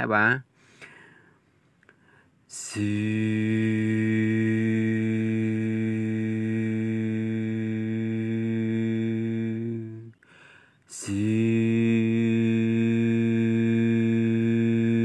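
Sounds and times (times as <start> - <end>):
person humming engine noise: 2.6 - 10.2, 10.9 - 15.0.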